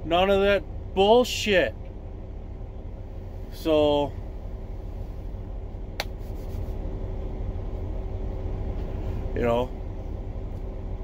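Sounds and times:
truck machinery rumble and hum: 0.0s - 11.0s.

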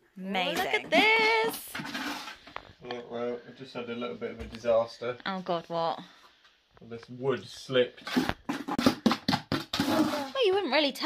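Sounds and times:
sharp knocks and scrapes: 0.5s - 2.7s, 8.0s - 10.8s.

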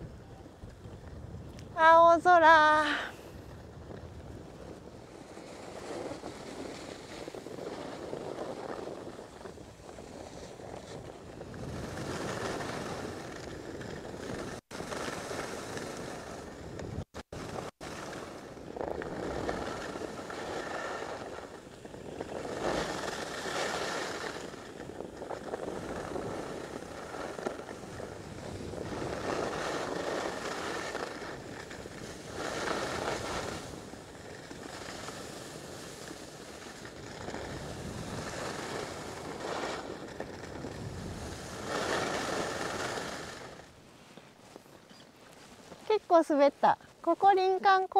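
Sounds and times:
wind on microphone: 0.0s - 43.7s
skis scraping on snow: 1.8s - 47.9s.

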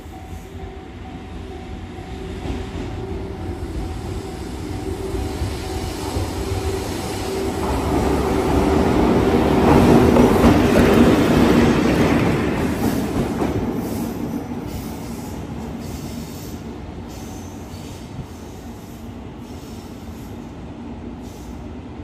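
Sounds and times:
locomotive wheels rumbling on rails: 2.4s - 16.0s.

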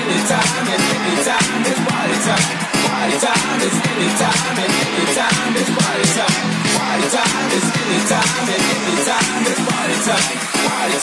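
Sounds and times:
disco dance music: 0.0s - 11.0s.

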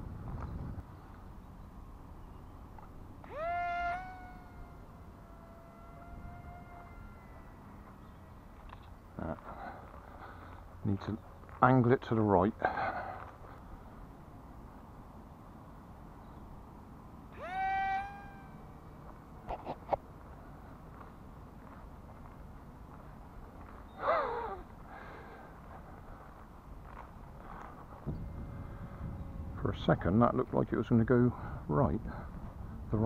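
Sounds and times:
pitched animal calls: 3.2s - 8.4s, 17.3s - 20.0s.

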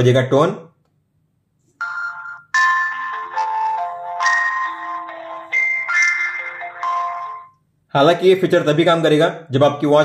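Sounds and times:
chiming ringtone melody: 1.8s - 7.6s.

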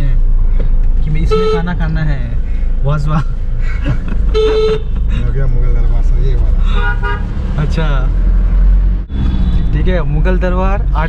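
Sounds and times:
car engine and road rumble: 0.0s - 11.0s
vehicle horn beeping: 1.3s - 1.7s, 4.3s - 5.1s, 6.7s - 7.3s.

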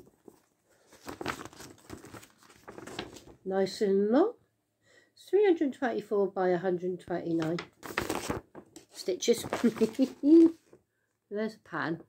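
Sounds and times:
paper rustling and crinkling: 0.0s - 3.4s, 7.4s - 10.8s.

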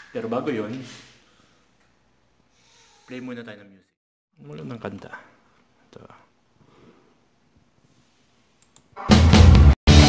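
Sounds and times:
computer mouse clicks: 8.6s - 8.9s.

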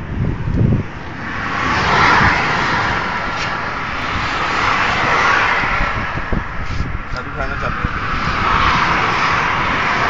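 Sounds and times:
vehicle passing at speed: 0.1s - 10.0s.

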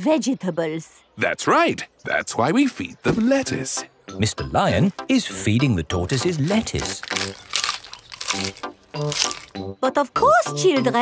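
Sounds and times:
light background music: 0.0s - 11.0s
cartoon lettuce crunching: 6.0s - 9.6s.

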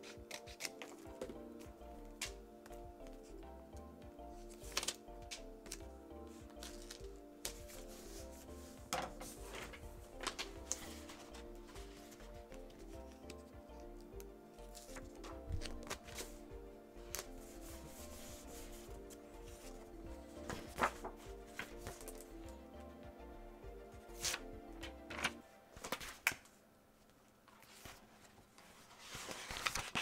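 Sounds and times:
sketchbook pages rustling: 0.0s - 3.4s, 4.3s - 16.4s, 17.0s - 22.3s, 24.1s - 30.0s
background music: 0.0s - 26.9s.

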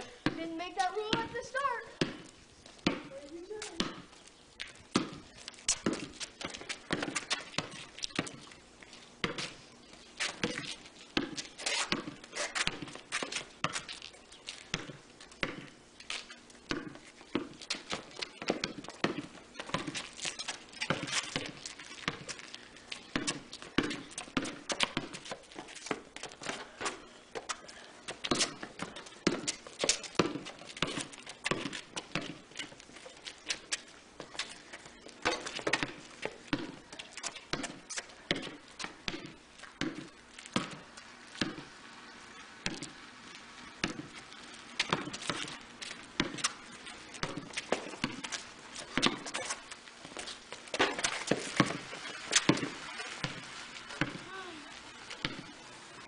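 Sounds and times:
basketball bouncing on concrete: 0.0s - 8.5s, 9.2s - 9.6s, 10.2s - 41.8s, 42.6s - 43.1s, 43.8s - 55.6s.

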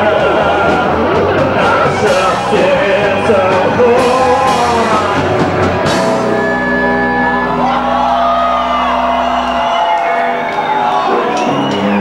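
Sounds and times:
punk rock band chord ringing: 0.0s - 11.7s
audience shouting and whooping: 0.0s - 12.0s.

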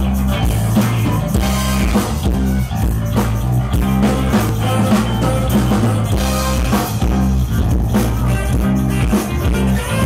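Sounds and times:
band playing funk: 0.0s - 10.0s
heavy bass line: 0.0s - 10.0s.

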